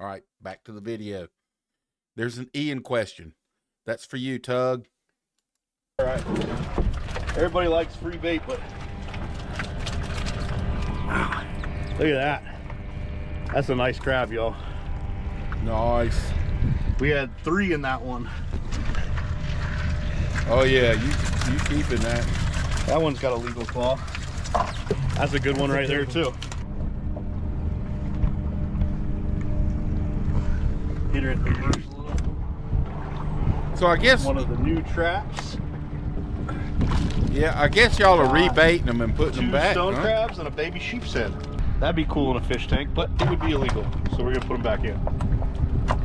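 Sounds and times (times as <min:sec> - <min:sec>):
outboard motor idling: 0:06.0 - 0:41.6
low outdoor rumble: 0:06.0 - 0:46.0
crabs clicking and knocking: 0:18.8 - 0:25.6.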